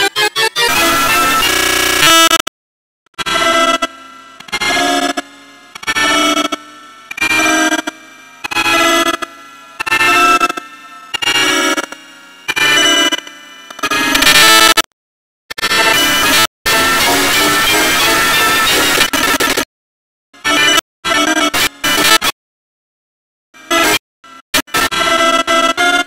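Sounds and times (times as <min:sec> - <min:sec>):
processed pitched sound bursts: 0:00.0 - 0:02.4.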